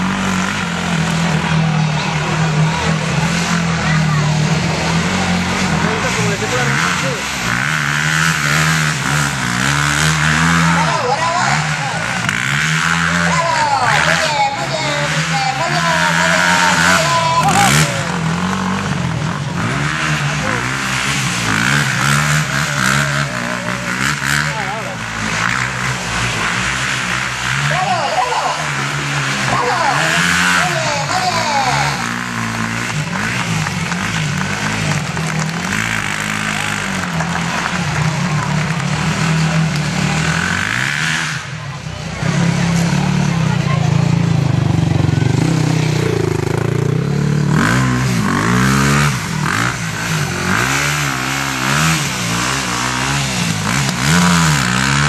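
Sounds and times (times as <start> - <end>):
quad bike engine revving: 0.0 - 55.0
voices: 0.0 - 55.0.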